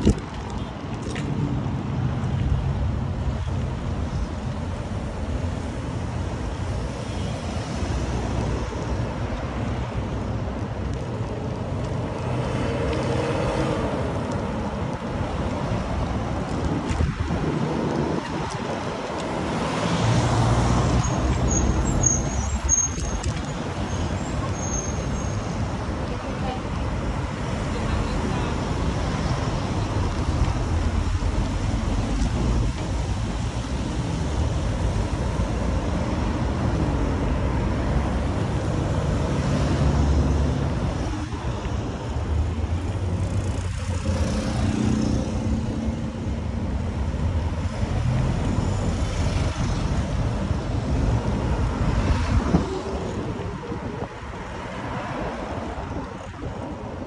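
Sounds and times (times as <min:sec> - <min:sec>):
wind on microphone: 0:00.0 - 0:02.1, 0:13.8 - 0:24.4, 0:49.4 - 0:57.0
road traffic passing: 0:00.0 - 0:57.0.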